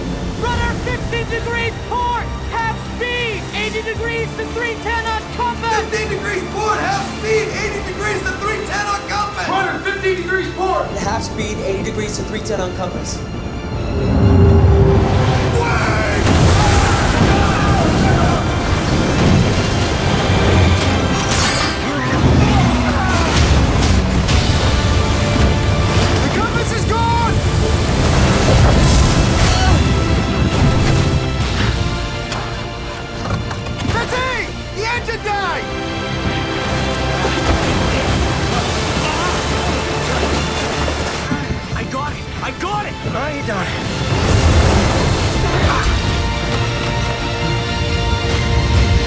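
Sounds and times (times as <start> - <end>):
storm waves crashing: 0.0 - 9.8, 10.5 - 49.0
music with deep booming hits: 13.3 - 34.8, 35.6 - 49.0.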